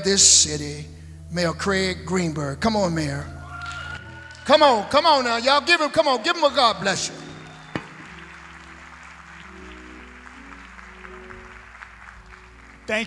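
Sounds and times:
soft keyboard chords: 0.0s - 13.0s
audience applause: 3.5s - 13.0s.

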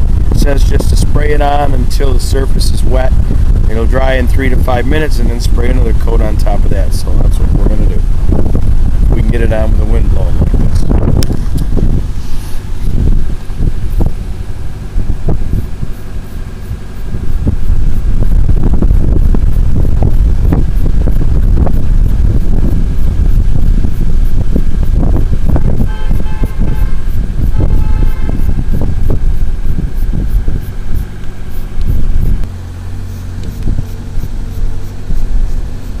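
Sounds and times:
wind buffeting microphone: 0.0s - 36.0s
car horn tooting: 25.8s - 28.8s.

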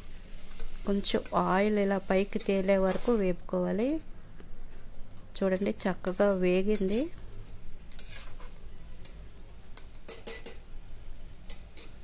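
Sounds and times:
meat sizzling in oil: 0.0s - 3.4s
metal spatula scraping a pot: 5.5s - 7.1s, 7.9s - 8.6s.

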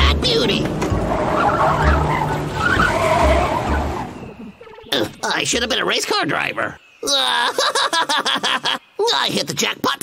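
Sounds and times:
cartoon tyres squealing: 0.0s - 5.2s
truck engine noise: 0.0s - 5.2s.

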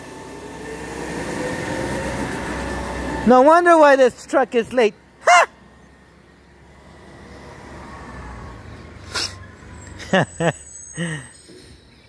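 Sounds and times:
garbage truck engine pulling away: 0.0s - 12.0s.

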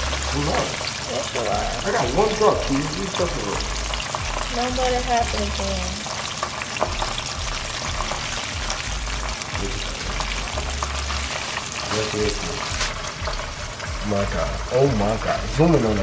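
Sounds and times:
chicken deep-frying in oil: 0.0s - 16.0s.

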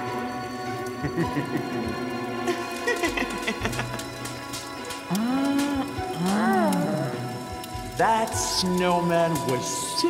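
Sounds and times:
log fire crackling: 0.0s - 10.0s.

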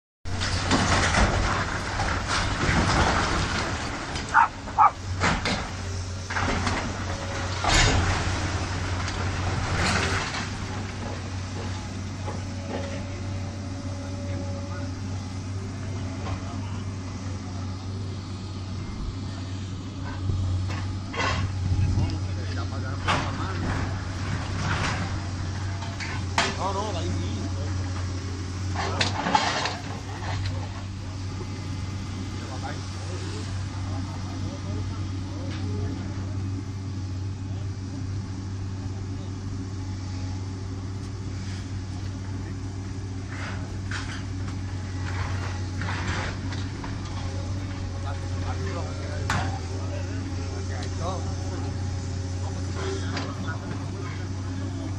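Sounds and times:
demolition knocks and crashes: 0.3s - 13.5s, 22.7s - 31.6s, 43.4s - 50.3s
excavator diesel engine running: 0.3s - 54.9s
onlookers talking: 10.8s - 41.0s, 41.7s - 54.9s.

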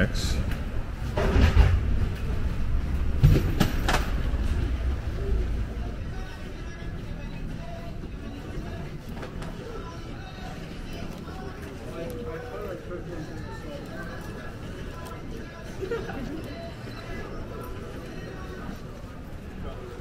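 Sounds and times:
steady hum: 0.0s - 11.9s
distant voices: 0.0s - 20.0s
low rumble: 0.6s - 7.7s.

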